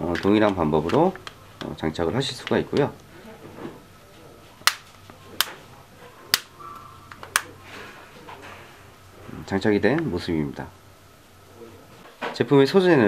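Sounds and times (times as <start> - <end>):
battery cover clips snapping: 4.6 - 5.6.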